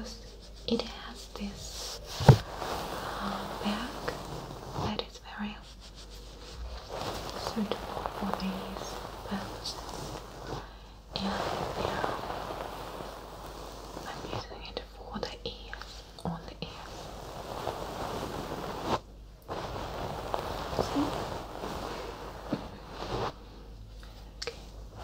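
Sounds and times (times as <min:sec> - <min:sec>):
soft fabric rustling: 0:00.0 - 0:25.0.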